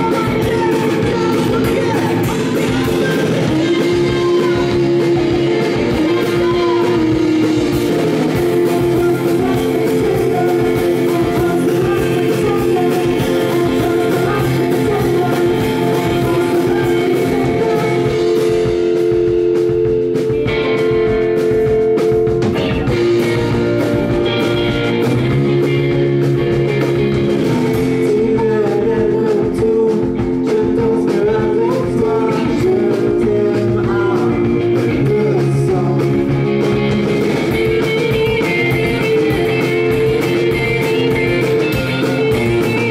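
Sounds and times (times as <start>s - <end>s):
person singing: 0.0s - 19.2s, 22.4s - 26.0s, 26.7s - 36.7s, 37.4s - 42.9s
drum kit: 0.0s - 42.9s
electric guitars: 0.0s - 42.9s.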